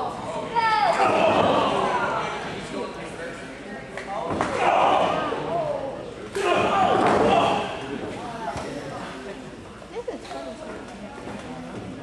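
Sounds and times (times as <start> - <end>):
spectators yelling in a hall: 0.0 - 2.4, 4.4 - 8.0.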